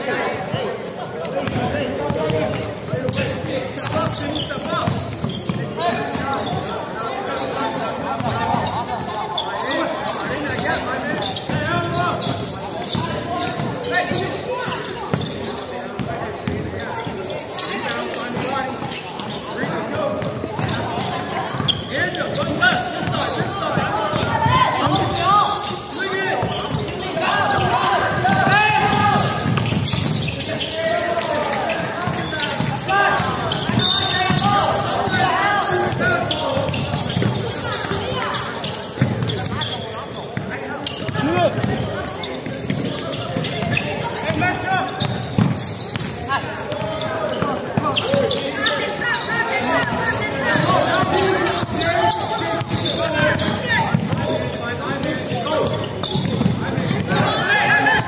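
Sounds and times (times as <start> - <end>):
basketball bouncing on wooden floor: 45.0 - 46.1, 52.6 - 54.4, 55.6 - 57.3
people calling out: 45.6 - 58.0.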